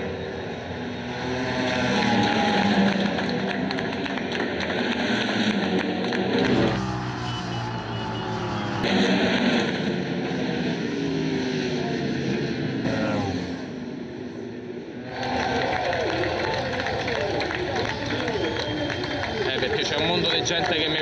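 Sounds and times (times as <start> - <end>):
motorcycles passing at speed: 0.0 - 13.8, 15.1 - 21.0.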